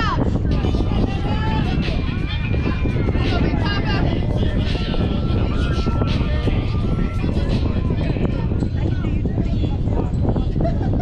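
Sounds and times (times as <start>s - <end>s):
wind rumble on microphone: 0.0s - 11.0s
people calling out: 0.6s - 8.5s.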